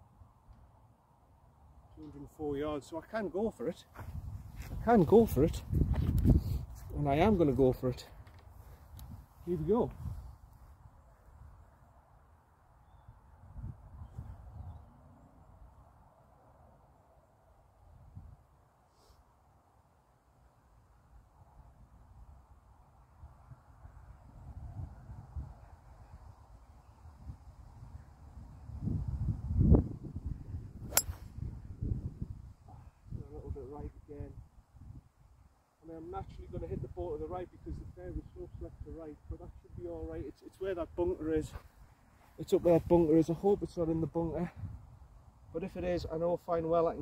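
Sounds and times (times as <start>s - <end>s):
golf club striking ball: 30.9s - 31.3s.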